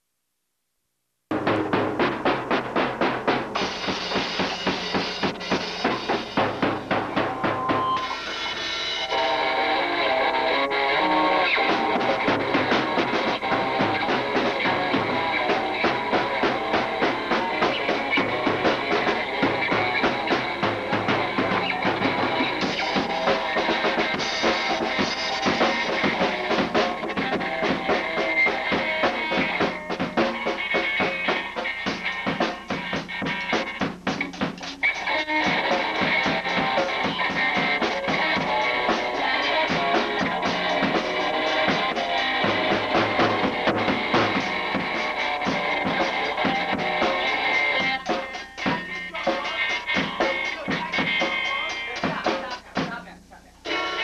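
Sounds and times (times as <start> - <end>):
drum kit fast beat: 1.3 - 54.0
electric guitar playing: 3.6 - 52.0.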